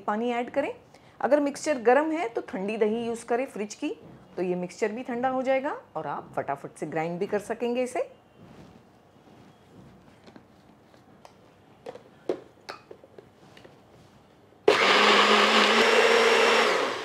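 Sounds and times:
blender motor grinding: 0:14.7 - 0:17.0.

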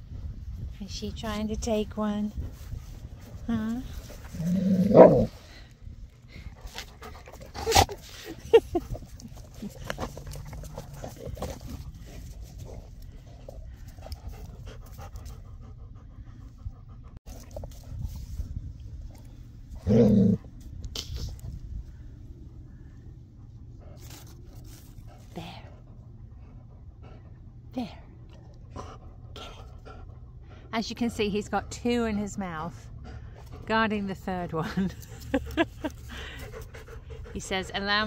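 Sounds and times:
dog low vocal sound: 0:03.9 - 0:05.5, 0:19.7 - 0:20.5
dog panting: 0:06.3 - 0:18.1, 0:23.4 - 0:38.0.

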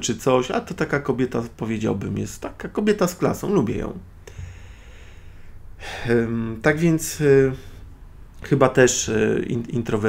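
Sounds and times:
man inhaling: 0:04.2 - 0:06.1.

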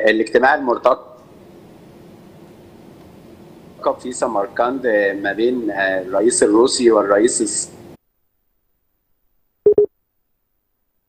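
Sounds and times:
short phone beeps: 0:09.7 - 0:09.9.

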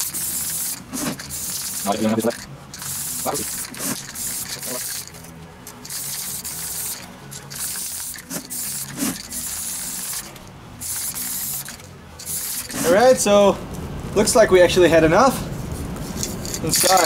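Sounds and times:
short hissing bursts: 0:00.0 - 0:02.2, 0:02.8 - 0:05.1, 0:05.8 - 0:13.0
quiet background music: 0:00.0 - 0:17.0.

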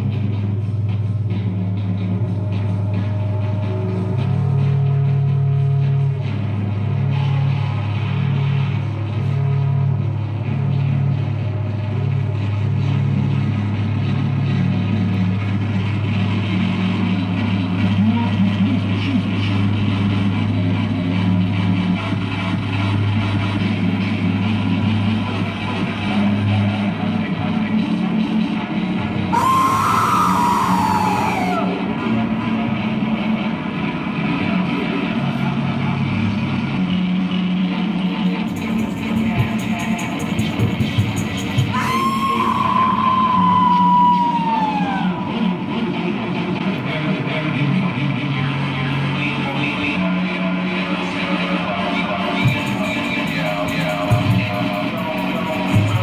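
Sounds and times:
heavy metal band playing: 0:29.3 - 0:31.8.

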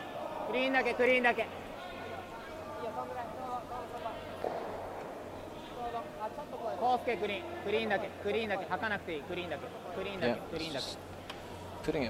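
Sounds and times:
players shouting: 0:00.0 - 0:11.8.

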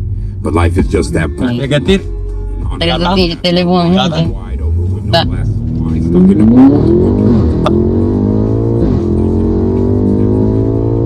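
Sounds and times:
car engine accelerating: 0:00.0 - 0:11.0.

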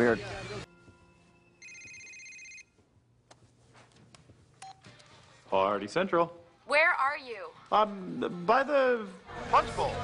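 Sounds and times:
telephone ringing: 0:01.5 - 0:02.8.

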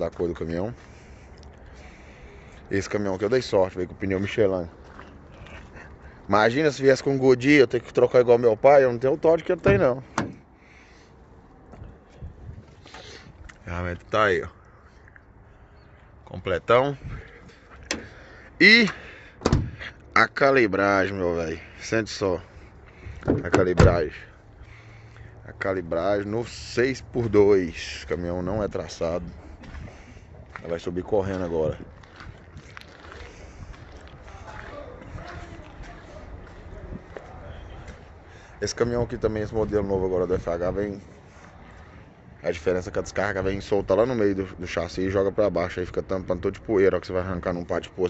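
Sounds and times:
wind buffeting microphone: 0:11.8 - 0:13.5, 0:17.0 - 0:17.4, 0:28.5 - 0:38.2.

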